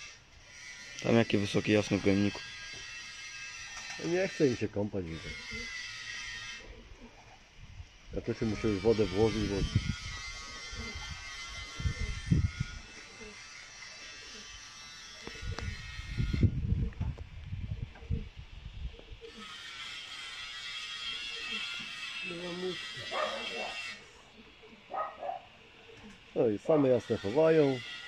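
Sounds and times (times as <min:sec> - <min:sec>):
small motor buzzing: 0:00.0 - 0:28.0.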